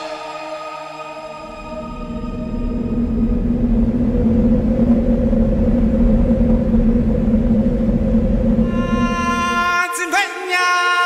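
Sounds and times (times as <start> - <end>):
low rumble with deep hum: 1.4 - 9.8.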